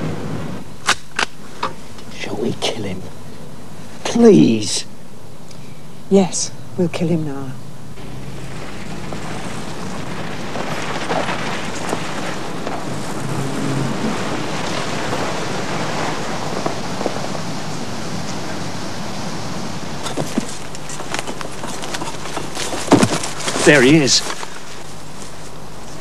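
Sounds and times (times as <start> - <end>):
car driving slowly: 7.9 - 18.9.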